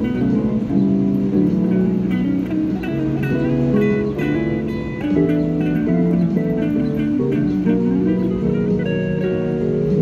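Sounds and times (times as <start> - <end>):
guitar plucked: 0.0 - 10.0.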